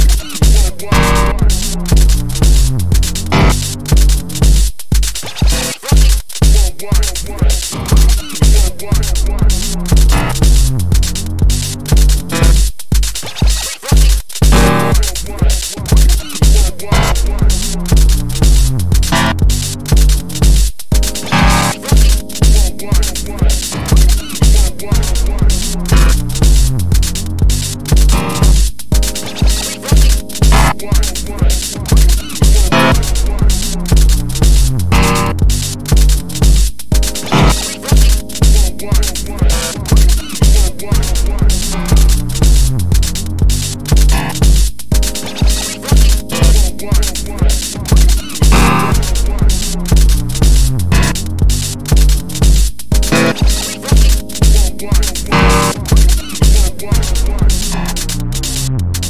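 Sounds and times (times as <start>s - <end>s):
kick drum: 0.0s - 57.6s
electronic dance music: 0.0s - 59.0s
fast hi-hats: 0.0s - 59.0s
stuttering sample loops: 0.0s - 59.0s.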